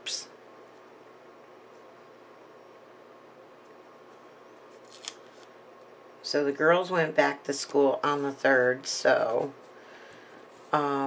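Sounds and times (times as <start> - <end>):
paper rustling: 4.7 - 5.5.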